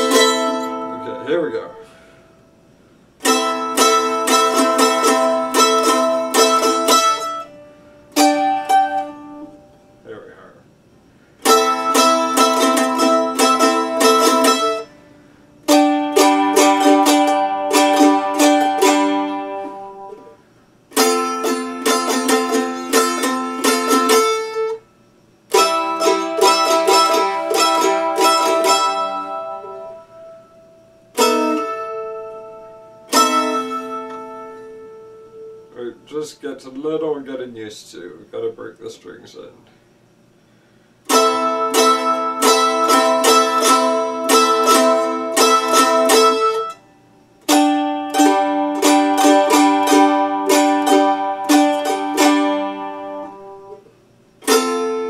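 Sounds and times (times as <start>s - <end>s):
mandolin strummed chords: 0.0s - 2.3s, 3.0s - 10.7s, 11.4s - 39.5s, 41.0s - 55.0s.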